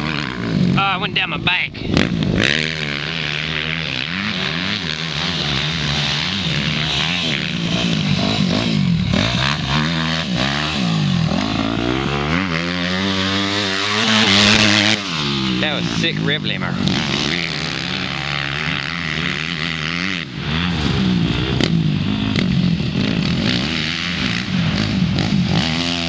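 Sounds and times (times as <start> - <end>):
dirt bike engines revving: 0.0 - 26.0.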